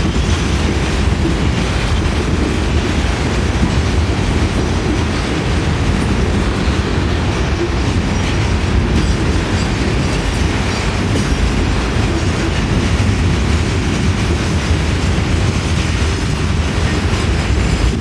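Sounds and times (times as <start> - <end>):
freight cars rumbling on rails: 0.0 - 18.0.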